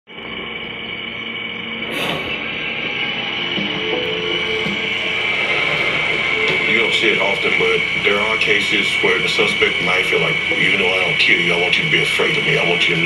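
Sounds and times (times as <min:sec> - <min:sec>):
high whine: 0:00.1 - 0:13.0
television soundtrack music: 0:00.1 - 0:13.0.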